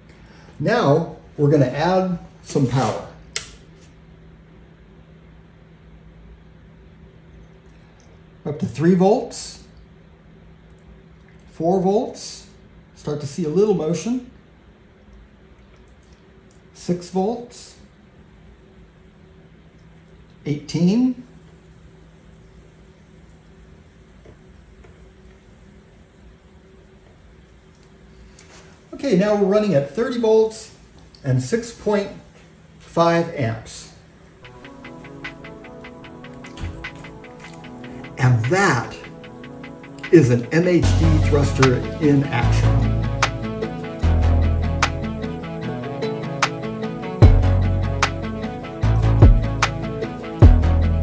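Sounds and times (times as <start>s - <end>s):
power supply low hum: 0.0s - 51.0s.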